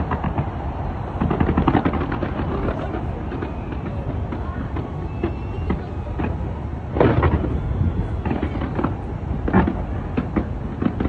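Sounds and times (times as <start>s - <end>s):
fireworks popping and crackling: 0.0s - 11.0s.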